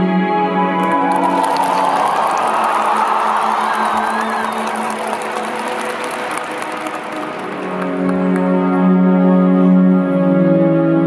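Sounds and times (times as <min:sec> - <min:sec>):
crowd applauding and cheering: 0:00.6 - 0:09.2.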